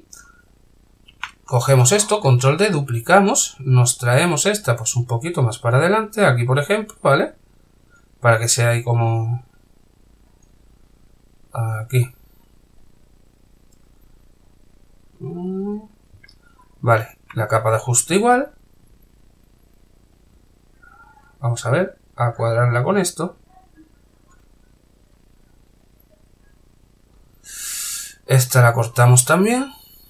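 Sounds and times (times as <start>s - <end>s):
man drawing breath: 27.4s - 28.2s.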